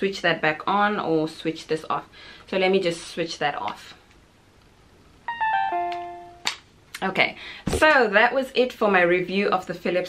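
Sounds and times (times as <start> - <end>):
descending electronic chime: 5.3 - 6.5.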